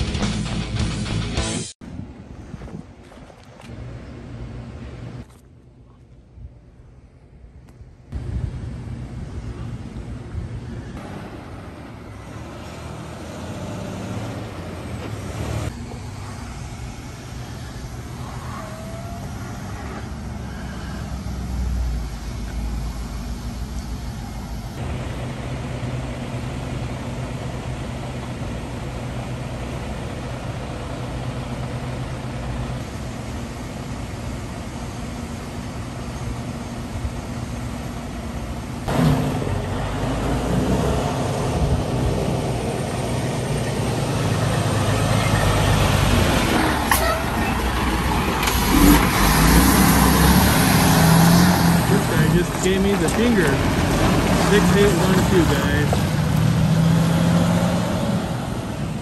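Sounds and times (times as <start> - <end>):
truck engines humming: 3.6 - 59.0.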